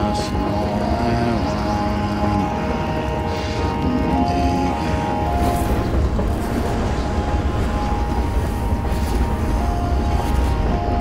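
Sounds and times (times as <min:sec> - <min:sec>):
deep low rumble: 0:00.0 - 0:11.0
orchestral held chords: 0:00.0 - 0:11.0.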